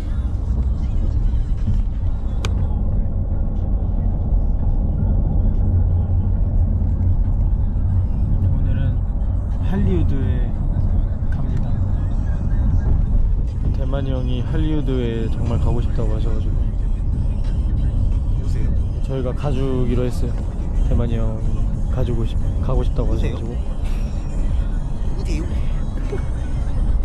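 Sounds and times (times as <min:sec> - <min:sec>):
road and engine rumble: 0:00.0 - 0:27.0.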